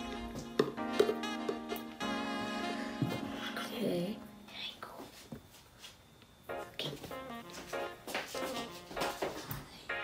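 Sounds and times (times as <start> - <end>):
background music: 0.0 - 4.7, 6.5 - 10.0.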